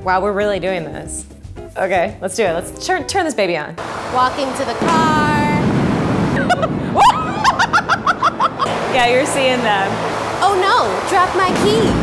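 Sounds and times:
fan air rushing: 3.8s - 12.0s
burst of laughter: 6.4s - 8.7s
person crying out: 7.0s - 7.6s.

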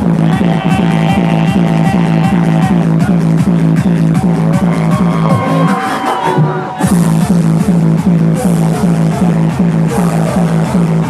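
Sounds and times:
pounding kick drum: 0.0s - 5.5s
hardstyle dance music: 0.0s - 11.0s.

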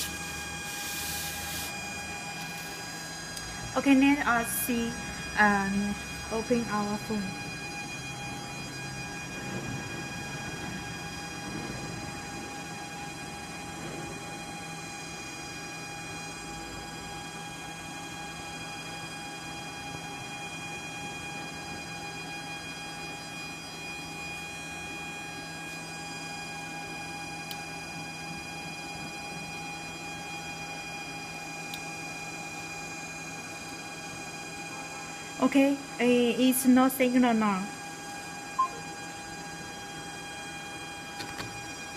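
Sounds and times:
high electronic whine: 0.0s - 17.2s, 38.4s - 41.9s.

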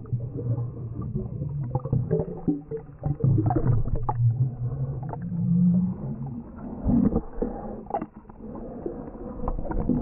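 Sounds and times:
underwater droning hum: 0.0s - 10.0s.

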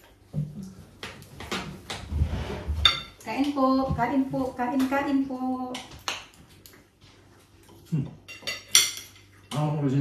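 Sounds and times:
cutlery and plates clinking: 2.7s - 3.6s, 7.8s - 9.9s.

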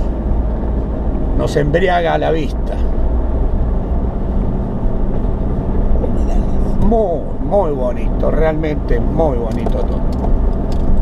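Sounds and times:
vehicle on gravel road: 0.0s - 11.0s.

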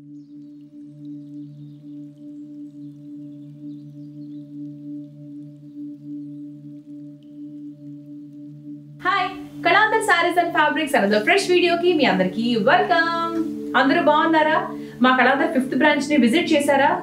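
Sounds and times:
low two-tone drone: 0.0s - 17.0s
woman speaking: 9.0s - 17.0s.

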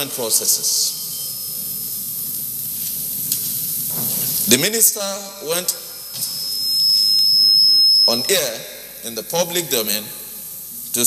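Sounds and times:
high-pitched electronic tone: 0.0s - 2.0s, 5.4s - 9.0s
faint hiss: 0.0s - 11.0s.

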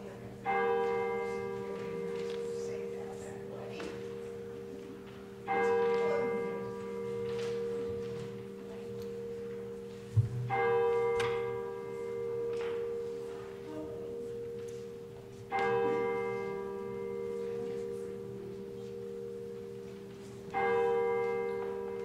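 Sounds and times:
church bell tolling: 0.0s - 22.0s.

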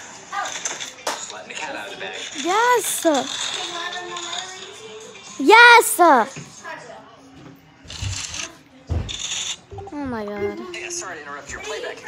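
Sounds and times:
girl shouting excitedly: 5.4s - 6.3s.

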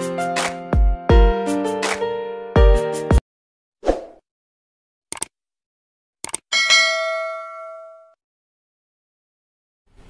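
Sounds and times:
bright bell ding: 6.5s - 8.2s.

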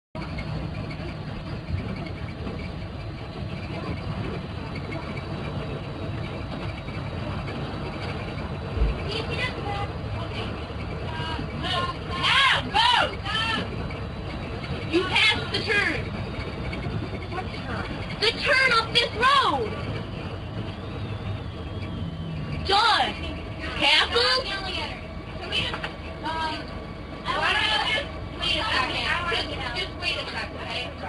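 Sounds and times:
bus engine and road rumble: 0.2s - 31.0s.

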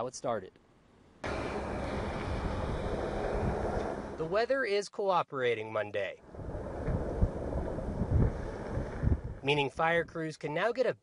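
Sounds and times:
wind buffeting microphone: 1.2s - 4.3s, 6.2s - 10.2s.

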